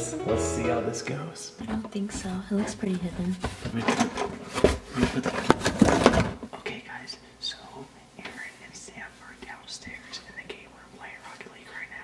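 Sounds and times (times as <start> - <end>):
quiet whispering voice: 6.5 - 12.0.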